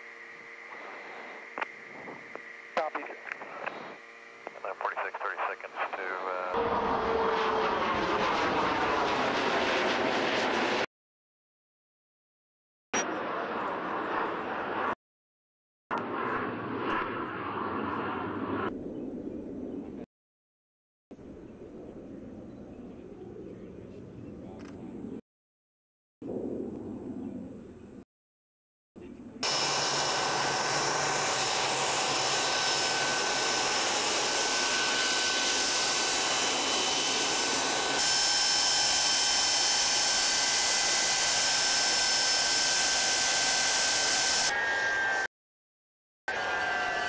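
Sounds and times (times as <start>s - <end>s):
distant jet aircraft rumble: 0.0s - 10.9s, 16.0s - 20.0s, 21.2s - 25.2s, 26.2s - 28.0s
radio clicks: 2.3s - 3.8s
crackly radio voices: 2.3s - 6.6s.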